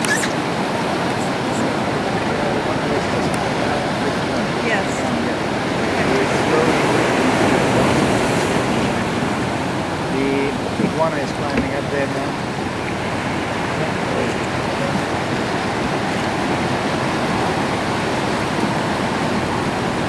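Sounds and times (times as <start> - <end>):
surf washing against rocks: 0.0 - 20.0.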